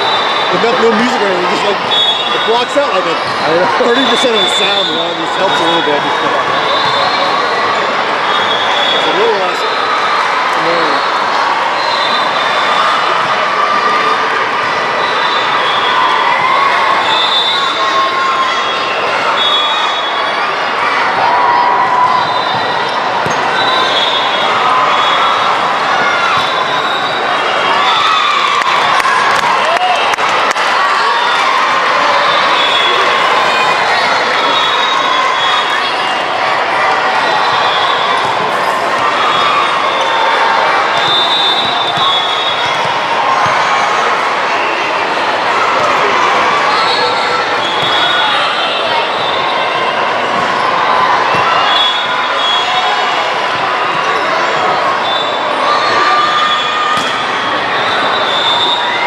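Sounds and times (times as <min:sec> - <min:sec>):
overlapping voices and shouts: 0:00.0 - 0:59.0
volleyballs being hit: 0:57.0 - 0:57.3.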